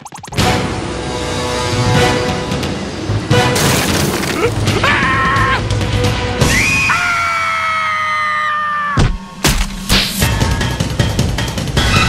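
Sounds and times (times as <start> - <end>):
crash and shatter effect: 3.4 - 4.7.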